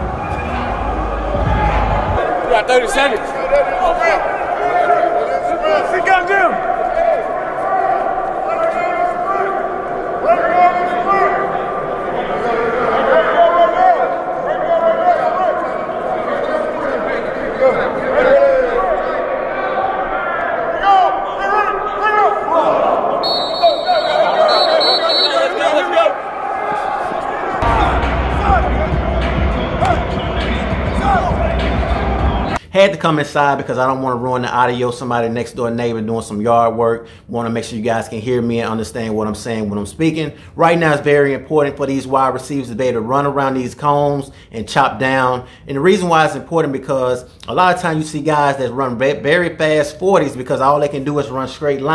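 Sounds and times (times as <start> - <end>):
music: 0.0 - 2.2, 27.6 - 32.6
people talking and calling out: 0.0 - 32.6.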